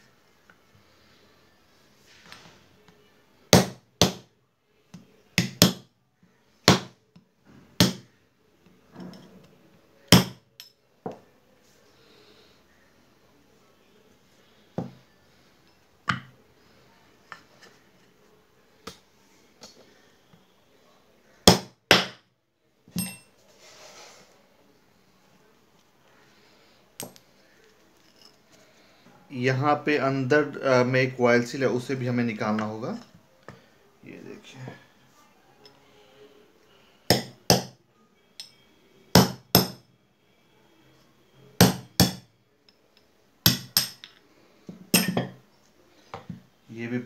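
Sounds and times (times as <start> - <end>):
sharp metallic clink: 23.0 - 23.3, 45.0 - 45.3.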